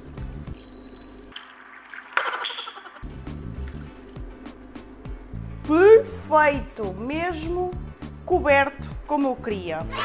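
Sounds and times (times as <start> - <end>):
background music: 3.0 - 10.0.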